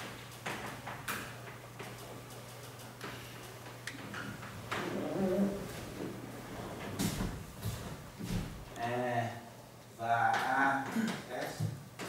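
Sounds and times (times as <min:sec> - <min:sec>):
person humming wordlessly: 0:04.8 - 0:05.8.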